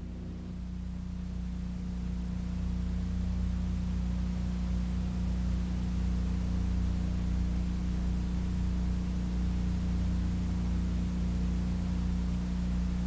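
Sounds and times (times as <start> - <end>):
steady low hum: 0.0 - 13.0.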